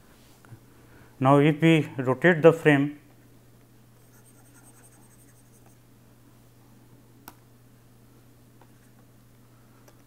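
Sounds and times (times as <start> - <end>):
steady low hum: 0.0 - 10.0
stylus scratching on tablet: 4.0 - 5.8.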